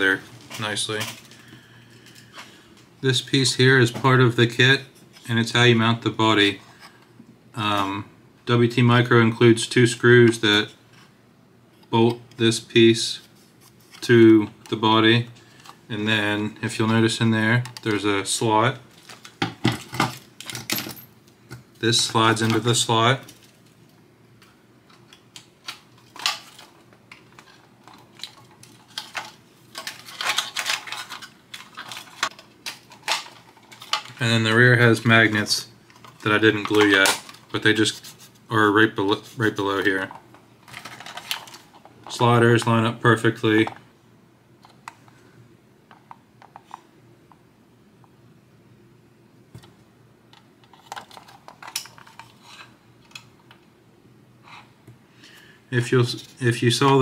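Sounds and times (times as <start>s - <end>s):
plastic parts clicking and rattling: 24.9s - 34.2s, 40.0s - 42.2s, 50.3s - 53.6s.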